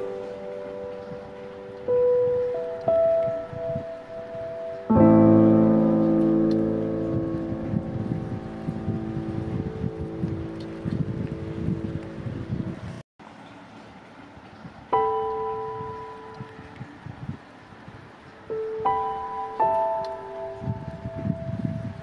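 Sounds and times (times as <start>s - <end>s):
low irregular rumble: 0.0s - 13.0s
slow piano music: 0.0s - 13.0s, 14.8s - 22.0s.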